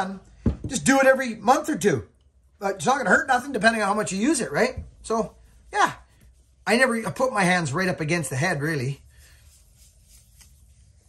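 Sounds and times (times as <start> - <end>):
hand rubbing wax on metal: 2.9 - 11.0.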